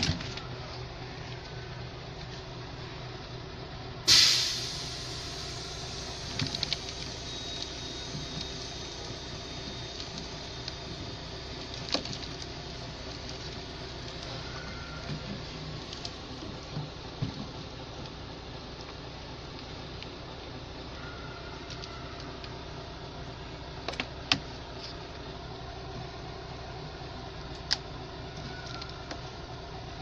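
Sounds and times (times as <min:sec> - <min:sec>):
steady background hum: 0:00.0 - 0:30.0.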